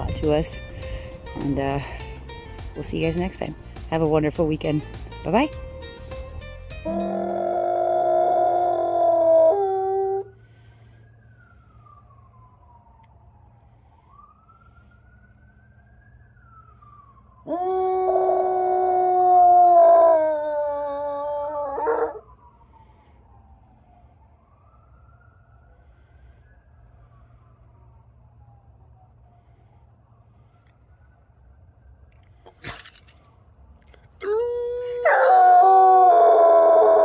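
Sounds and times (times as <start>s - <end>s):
faint siren wailing: 0.0s - 37.0s
dog howling: 6.8s - 10.3s, 17.5s - 22.2s, 34.2s - 37.0s.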